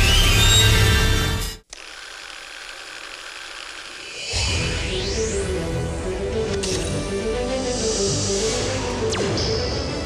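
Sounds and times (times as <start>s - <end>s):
music: 0.0s - 1.6s, 4.4s - 10.0s.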